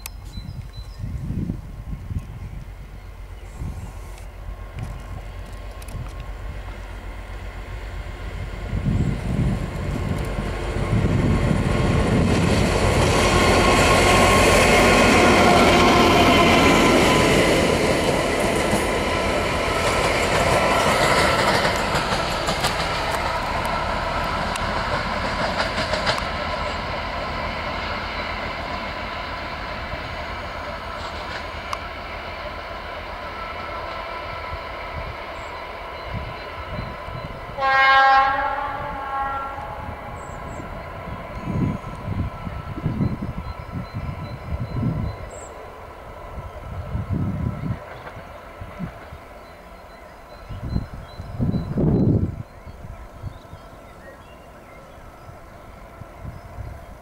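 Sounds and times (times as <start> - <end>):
diesel locomotives passing: 0.0 - 57.0
wheels rolling on rails: 17.1 - 26.9
locomotive horn blast: 37.5 - 40.2.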